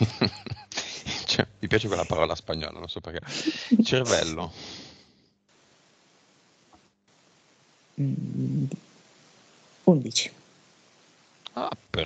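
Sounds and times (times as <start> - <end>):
man humming: 0.0 - 2.4, 3.2 - 4.7, 11.5 - 12.0
man speaking: 0.0 - 4.8, 11.5 - 12.0.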